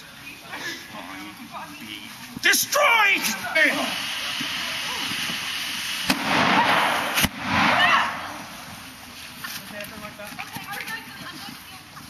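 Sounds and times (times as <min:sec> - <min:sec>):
smoke charge cracking: 0:02.4 - 0:09.3
loud hissing rush: 0:02.4 - 0:09.4
smoke charge bang: 0:03.7 - 0:08.8.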